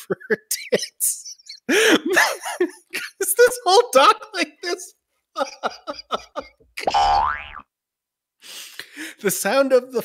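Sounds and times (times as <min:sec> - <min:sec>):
man laughing breathily: 0:00.0 - 0:03.2, 0:05.3 - 0:06.7.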